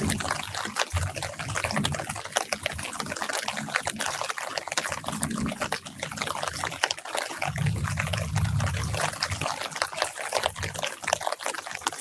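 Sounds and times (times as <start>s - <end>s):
light rain pattering on leaves: 0.0s - 12.0s.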